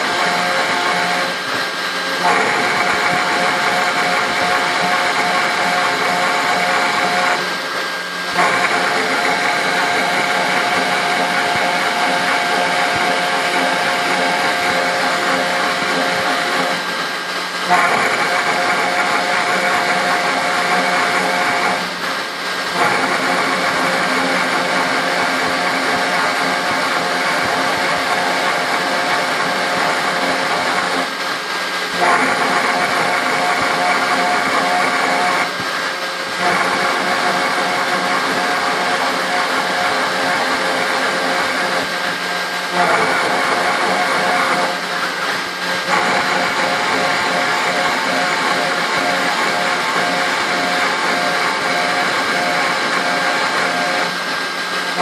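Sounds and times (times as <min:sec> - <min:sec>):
router spindle whine: 0:00.0 - 0:55.0
engraving bit cutting metal: 0:02.2 - 0:07.5, 0:08.3 - 0:17.0, 0:17.6 - 0:21.9, 0:22.7 - 0:31.1, 0:31.9 - 0:35.6, 0:36.3 - 0:54.2.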